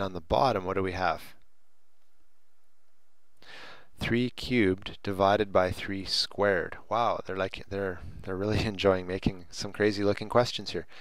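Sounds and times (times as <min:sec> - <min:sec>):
low recording hiss: 0:00.0 - 0:11.0
person drawing a breath: 0:03.4 - 0:03.9.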